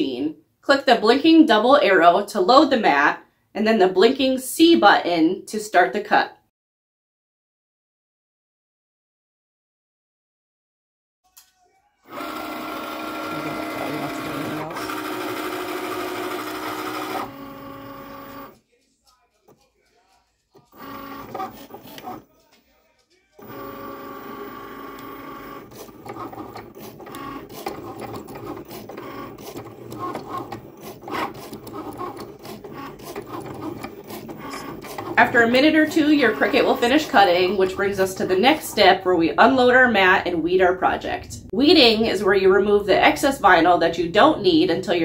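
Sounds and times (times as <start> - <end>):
carriage and rollers whirring: 11.4 - 18.6, 19.5 - 22.2, 23.3 - 38.8
cutting machine motor whine: 12.0 - 18.6, 20.6 - 22.2, 23.4 - 37.9.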